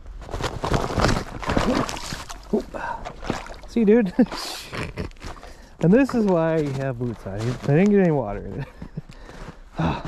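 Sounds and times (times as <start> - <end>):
ice and snow crackling: 0.0 - 10.0
boots splashing in water: 0.4 - 7.9.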